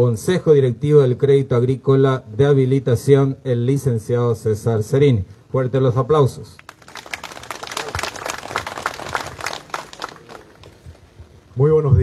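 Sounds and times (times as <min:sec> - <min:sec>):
audience applauding: 0:06.6 - 0:11.2.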